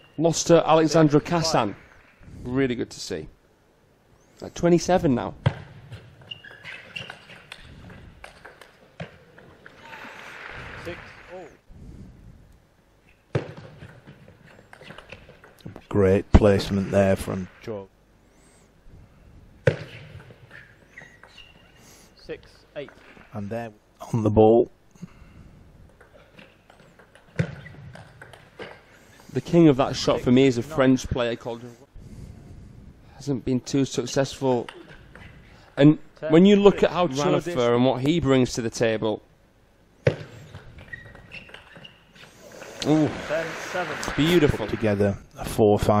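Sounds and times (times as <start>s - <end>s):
crowd applause and cheering: 9.7s - 11.6s, 42.8s - 45.0s.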